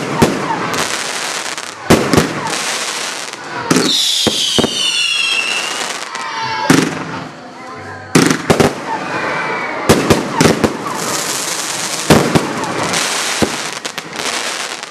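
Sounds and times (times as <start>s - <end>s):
firework bangs: 0.0s - 7.3s, 8.1s - 9.0s, 9.8s - 14.9s
firework crackling: 0.0s - 7.3s, 8.2s - 9.0s, 9.8s - 14.9s.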